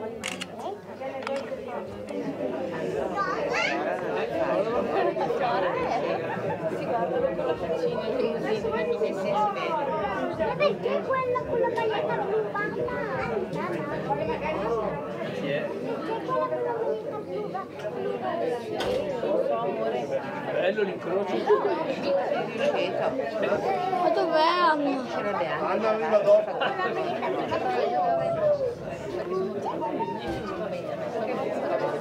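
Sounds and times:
people chattering: 0.0 - 32.0
people talking at once: 0.0 - 32.0.

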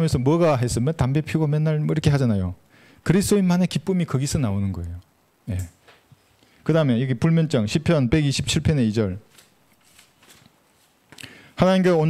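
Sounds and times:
rustling of thin pages: 9.3 - 11.2.

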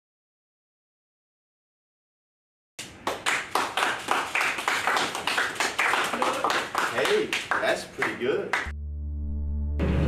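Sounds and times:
people applauding: 2.8 - 8.7.

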